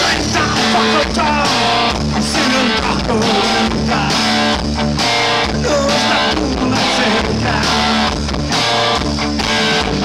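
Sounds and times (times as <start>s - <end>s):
bass guitar: 0.0s - 10.0s
electric guitar strumming: 0.0s - 10.0s
steady drum beat: 0.0s - 10.0s.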